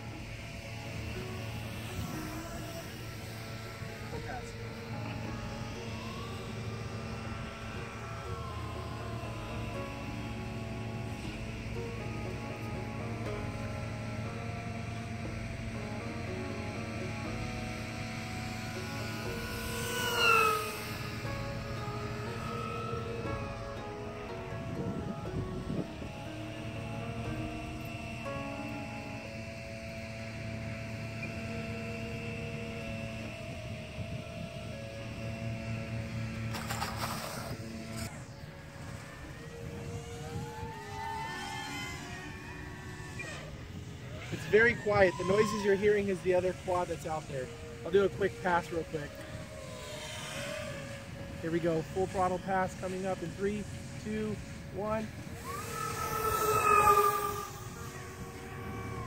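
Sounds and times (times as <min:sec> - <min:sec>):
background music: 0:00.0 - 0:59.0
rc plane motors whining: 0:00.0 - 0:59.0.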